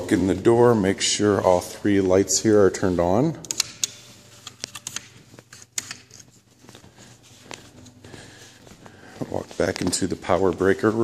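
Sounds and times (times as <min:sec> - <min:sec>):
soft footsteps: 0:00.0 - 0:11.0.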